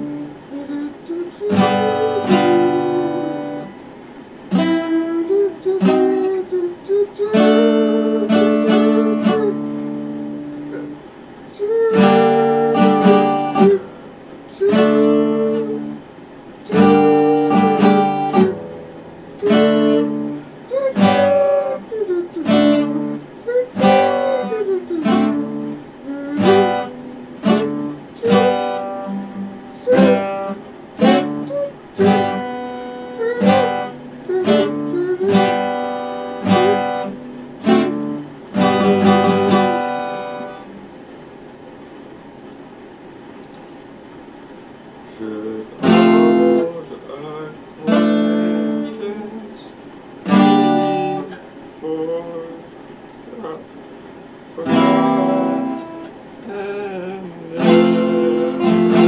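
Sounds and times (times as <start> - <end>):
acoustic guitar strumming chords: 0.0 - 41.6, 44.4 - 59.0.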